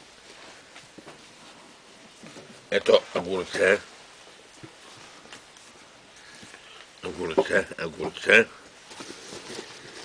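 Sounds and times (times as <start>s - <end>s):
hands rummaging in leather bag: 8.8s - 10.0s.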